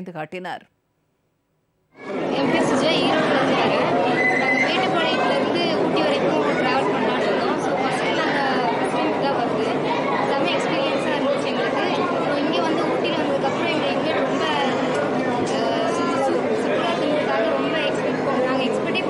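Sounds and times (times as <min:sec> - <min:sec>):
crowd chatter: 0:02.0 - 0:19.0.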